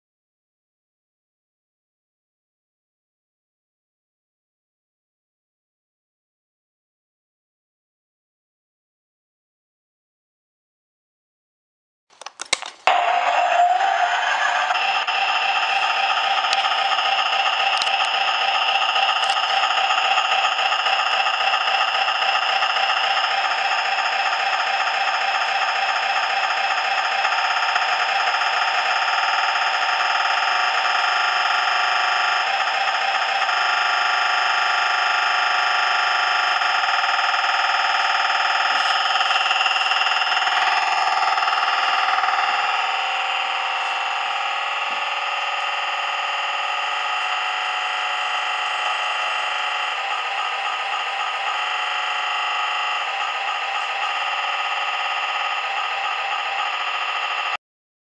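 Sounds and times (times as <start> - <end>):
buzzy electronic diesel engine drone: 12.8 - 57.6.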